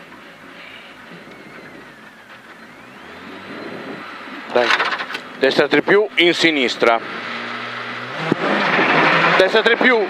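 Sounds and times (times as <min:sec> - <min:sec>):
car engine idling: 0:00.0 - 0:08.1.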